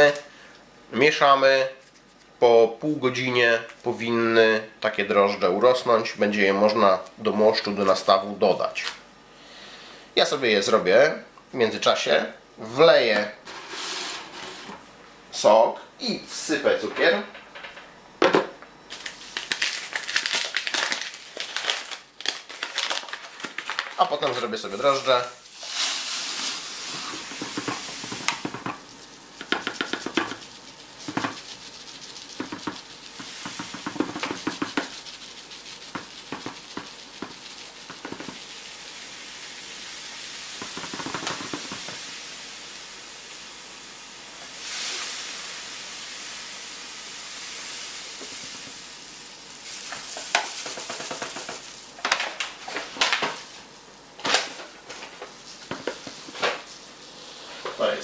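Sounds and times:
sugar pouring through funnel: 24.6s - 43.4s.

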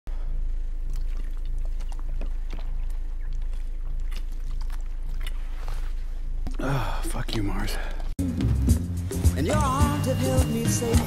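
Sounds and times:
person gulping: 6.4s - 7.4s.

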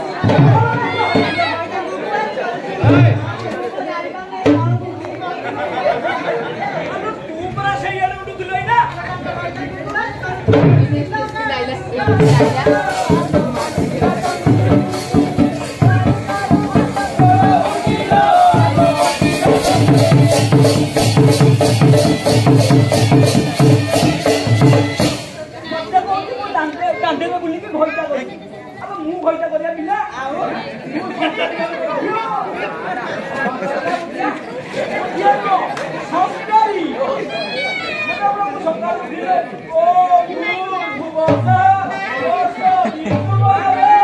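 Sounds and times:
voices talking: 0.0s - 44.0s
barrel drum beating: 10.4s - 11.2s, 12.0s - 25.4s.

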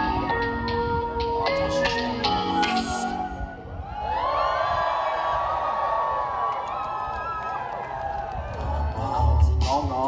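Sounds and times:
concert crowd cheering and whooping: 3.6s - 9.4s.

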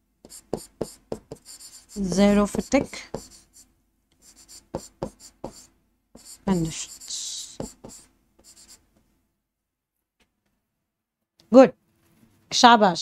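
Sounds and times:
chalk scratching on blackboard: 0.2s - 8.8s.

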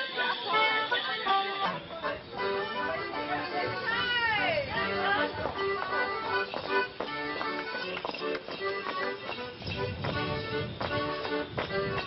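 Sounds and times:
accordion dance tune: 0.0s - 12.0s.

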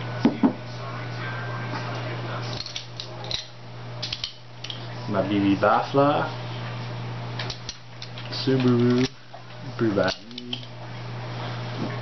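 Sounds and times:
glass bottle knocking on wooden table: 0.3s - 0.6s
metal bottle opener clinking: 2.5s - 4.8s, 10.0s - 10.7s.

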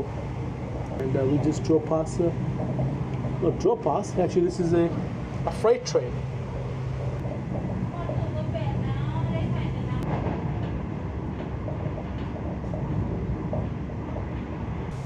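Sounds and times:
train running noise: 0.0s - 15.0s.

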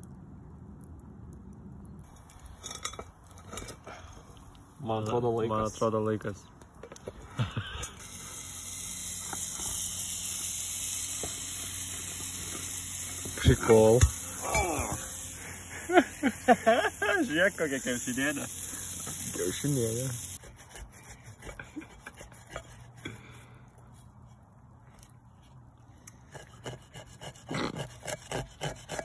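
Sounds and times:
pizza sizzling in skillet: 7.4s - 20.4s.

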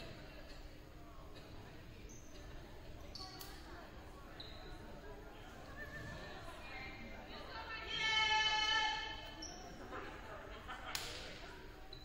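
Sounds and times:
faint chatter: 0.0s - 12.0s
shoe squeaks: 4.4s - 4.8s.

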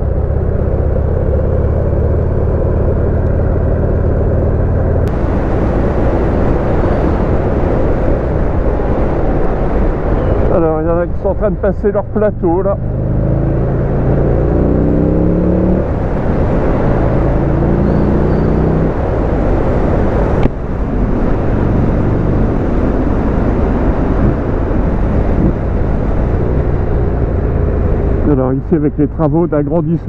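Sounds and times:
motorcycle engine accelerating: 0.0s - 8.0s, 12.0s - 29.0s
wind noise: 0.0s - 30.0s.

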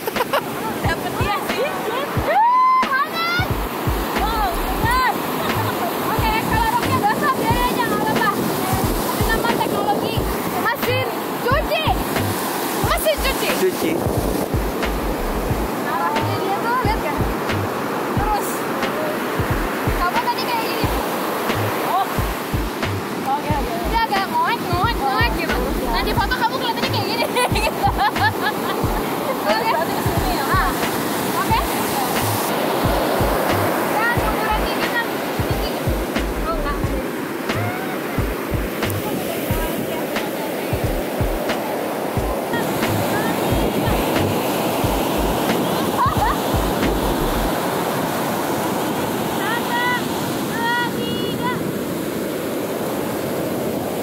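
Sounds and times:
wind buffeting microphone: 0.0s - 51.9s
ocean surf breaking: 0.0s - 54.0s.

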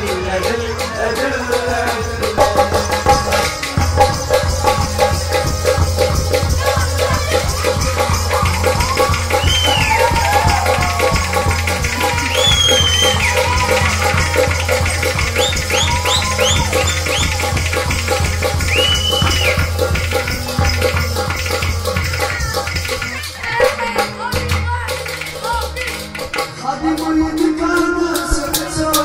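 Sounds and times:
high sliding melodic notes: 0.0s - 24.2s
dance music with percussion: 0.0s - 29.0s.

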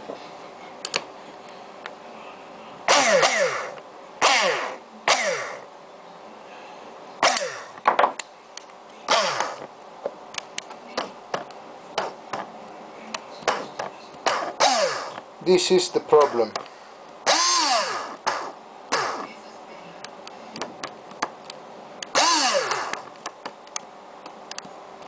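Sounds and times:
coil spring twanging: 2.9s - 5.6s, 13.5s - 15.2s, 17.2s - 19.3s.

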